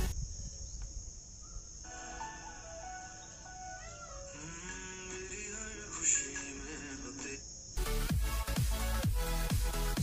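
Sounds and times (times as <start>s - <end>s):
quiet background music: 1.9s - 7.4s.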